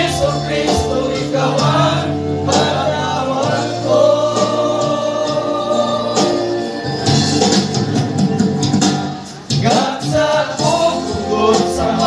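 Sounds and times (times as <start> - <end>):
men singing together: 0.0 - 6.8, 9.5 - 12.0.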